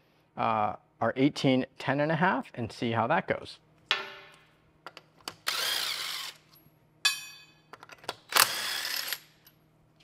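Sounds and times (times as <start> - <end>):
power tool spinning lug nuts: 5.4 - 6.5, 8.2 - 9.4
metallic clink: 7.0 - 7.7.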